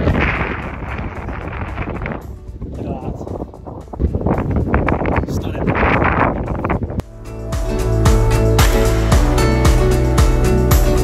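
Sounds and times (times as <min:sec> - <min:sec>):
wind buffeting microphone: 0:00.0 - 0:07.0
background music with low bass: 0:00.0 - 0:11.0.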